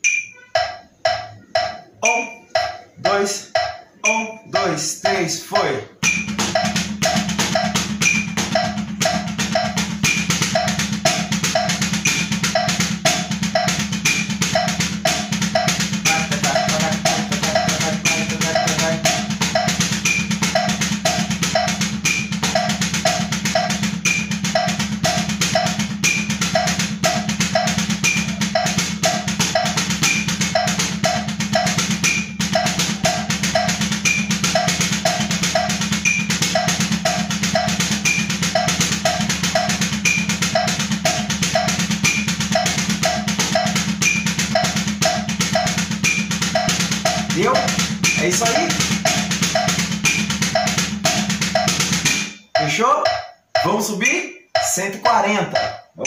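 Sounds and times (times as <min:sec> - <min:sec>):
backing beat or click: 0:00.0 - 0:56.0
drumsticks on practice pad: 0:00.0 - 0:56.0.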